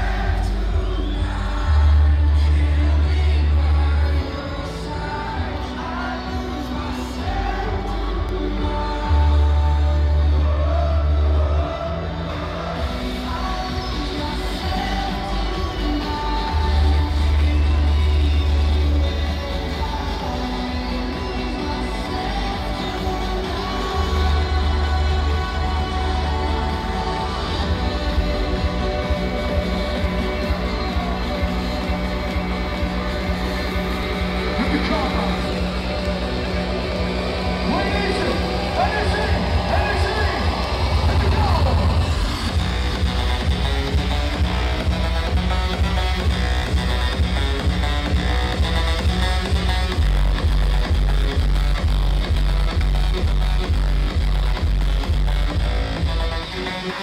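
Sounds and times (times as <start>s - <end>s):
electronic dance music: 0.0s - 57.0s.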